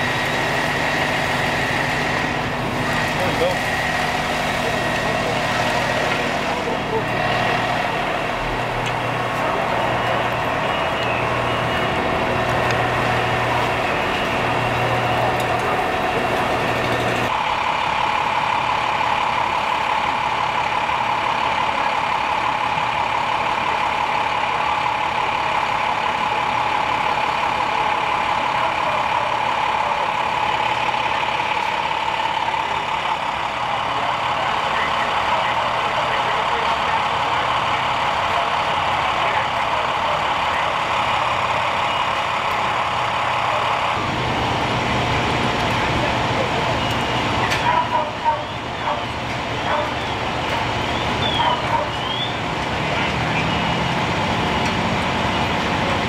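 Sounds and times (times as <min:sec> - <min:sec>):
drone of engines running: 0:00.0 - 0:56.0
fire engines idling: 0:00.0 - 0:56.0.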